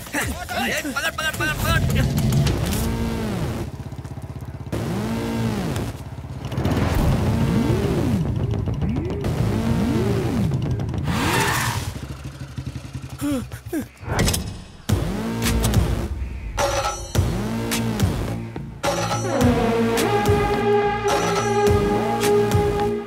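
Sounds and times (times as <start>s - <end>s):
dramatic background score: 0.0s - 3.8s, 12.6s - 23.0s
motorcycle engine: 0.0s - 23.0s.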